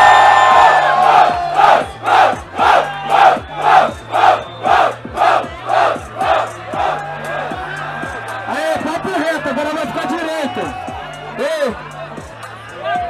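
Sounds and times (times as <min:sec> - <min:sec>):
crowd shouting in rhythm: 0:00.0 - 0:13.0
hip-hop beat: 0:00.8 - 0:13.0.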